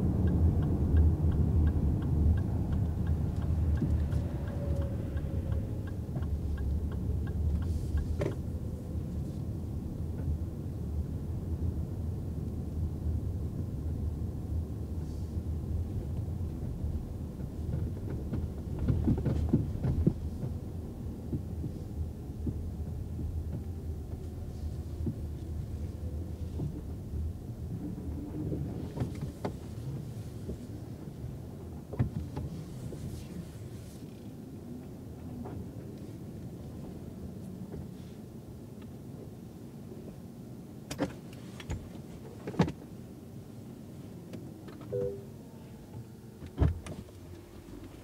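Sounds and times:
road and tyre rumble: 0.0s - 48.0s
clicks and knocks in car: 17.4s - 24.2s
two-note chime: 44.9s - 45.4s.

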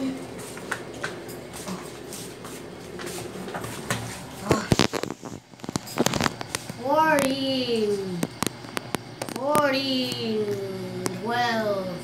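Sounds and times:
soft clicks and rustles: 2.9s - 10.3s.

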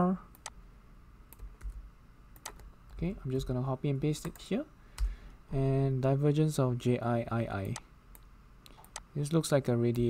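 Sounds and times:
person speaking: 2.9s - 7.9s, 9.1s - 10.0s.

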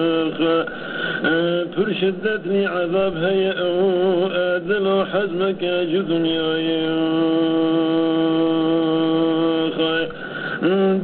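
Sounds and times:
man chanting solo: 1.3s - 11.0s.

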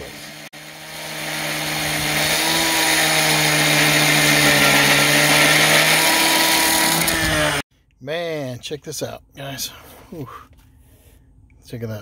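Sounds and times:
abrasive wheel grinding steel: 0.0s - 7.6s
cut-off saw engine drone: 0.0s - 7.6s.

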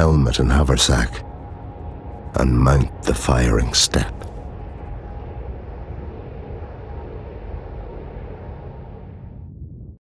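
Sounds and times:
faint steady hum: 0.0s - 10.0s
low rumbling ambience: 0.0s - 10.0s.

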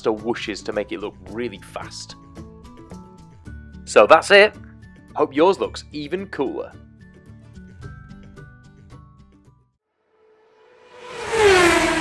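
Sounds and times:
whoosh falling in pitch: 10.3s - 12.0s.

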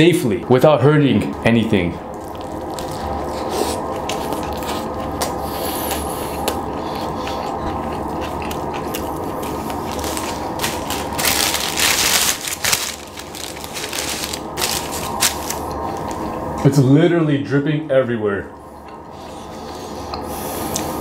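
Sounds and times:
low hum: 1.3s - 21.0s
close chewing with mouth clicks: 2.1s - 11.7s.

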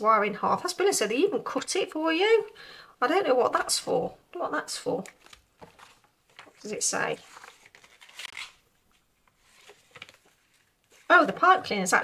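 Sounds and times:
faint handling noises: 5.0s - 11.8s
paper leaflet rustling: 5.0s - 12.0s.

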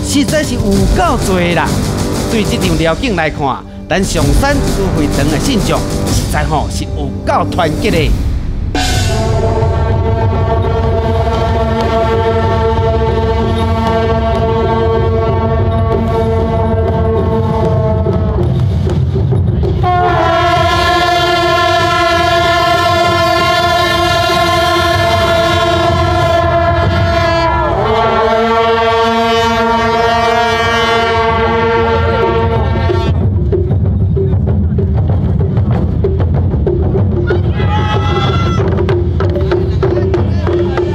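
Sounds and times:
low rumble: 0.0s - 11.8s
brass horns blowing long notes: 0.0s - 19.0s, 19.8s - 33.2s.

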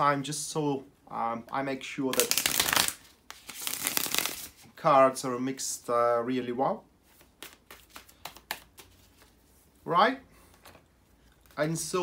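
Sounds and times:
cards snapping and clicking: 2.1s - 4.4s.

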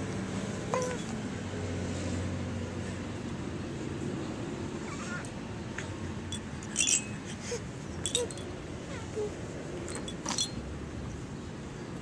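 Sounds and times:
toy clinking rattle: 6.3s - 7.4s, 8.0s - 8.6s, 9.9s - 10.6s.

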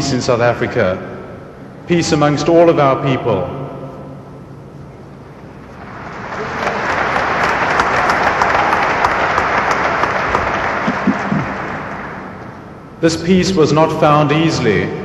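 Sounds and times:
audience applauding: 5.7s - 12.6s.

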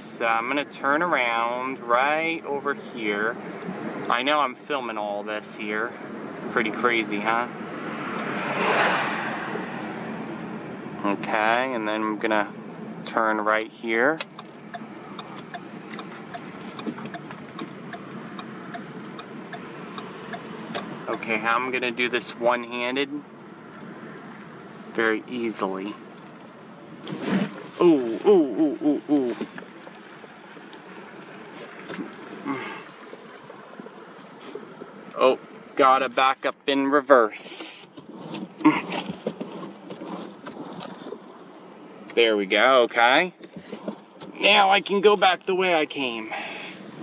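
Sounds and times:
car engine and road noise: 0.0s - 47.0s
turn signal ticking: 13.9s - 21.6s
car cabin noise reversing: 13.9s - 28.2s.

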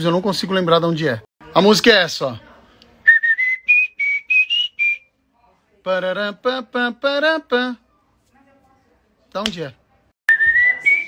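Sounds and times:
man whistling a jingle: 3.1s - 5.1s, 10.3s - 11.0s.

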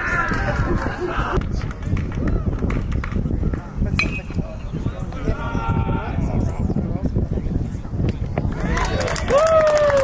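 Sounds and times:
outdoor crowd voices: 0.0s - 10.0s.

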